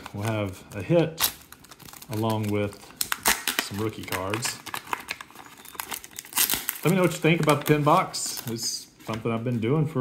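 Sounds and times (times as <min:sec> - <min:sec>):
foil wrapper crinkling: 0:00.0 - 0:08.8.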